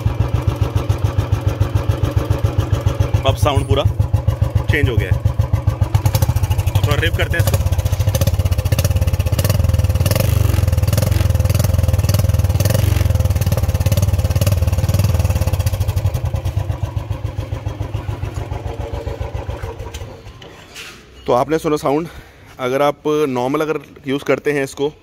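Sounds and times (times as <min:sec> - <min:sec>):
motorcycle engine revving: 0:00.0 - 0:20.4.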